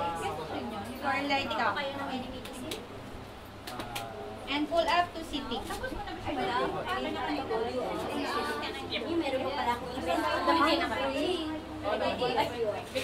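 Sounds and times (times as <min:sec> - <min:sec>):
indistinct chatter of people: 0:00.0 - 0:13.0.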